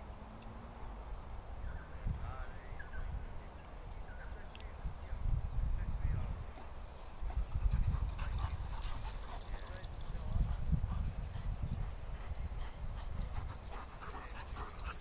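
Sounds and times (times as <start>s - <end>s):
dogs making small vocal sounds: 7.1s - 15.0s.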